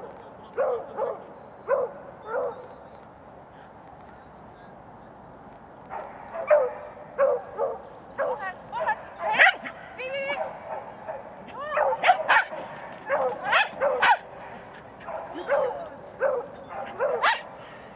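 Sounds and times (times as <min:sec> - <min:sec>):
dog barking excitedly: 0:05.9 - 0:14.3, 0:15.0 - 0:17.5.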